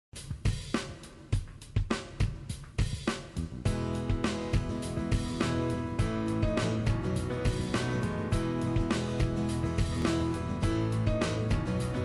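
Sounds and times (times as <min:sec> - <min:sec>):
drum kit beat: 0:00.1 - 0:12.0.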